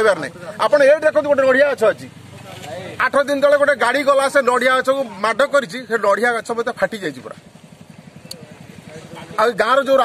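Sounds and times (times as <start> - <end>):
engine idling: 0.0 - 10.0
man speaking: 2.7 - 7.4.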